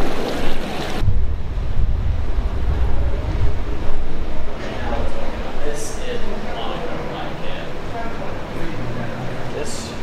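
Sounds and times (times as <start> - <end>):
wind buffeting microphone: 0.1 - 6.5.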